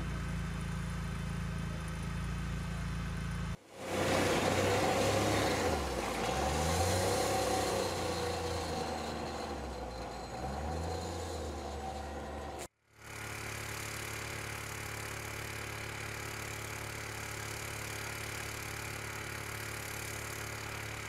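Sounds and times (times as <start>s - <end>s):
vehicle engine idling: 0.0s - 21.0s
engine revving: 3.5s - 12.7s
tyres on gravel: 3.8s - 12.7s.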